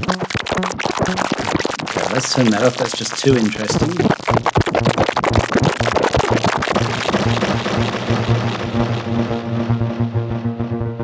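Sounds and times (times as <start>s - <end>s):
low synthesizer note: 0.0s - 1.6s, 6.7s - 11.0s
stuttering granular delay synthesizer: 0.0s - 11.0s.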